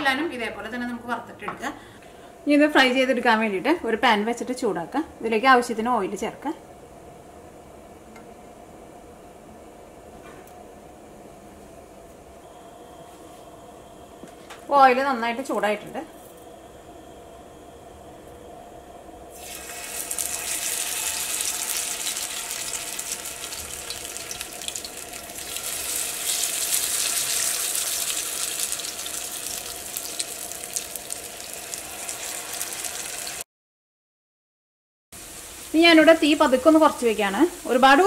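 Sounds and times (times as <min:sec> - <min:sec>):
faint steady hum: 0:00.0 - 0:33.4
potato slices sizzling in hot oil: 0:19.3 - 0:33.4, 0:35.2 - 0:38.0.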